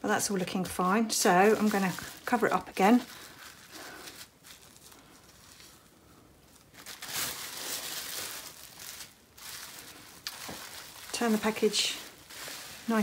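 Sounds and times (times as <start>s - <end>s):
bubble wrap crinkling: 0.2s - 13.0s.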